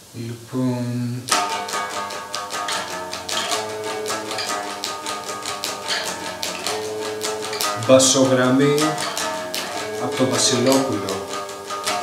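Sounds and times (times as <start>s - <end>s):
electric guitar single notes: 1.3s - 12.0s.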